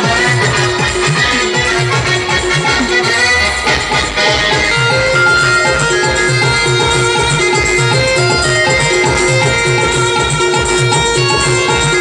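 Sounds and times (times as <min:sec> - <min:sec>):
electronic keyboard dance music: 0:00.0 - 0:12.0.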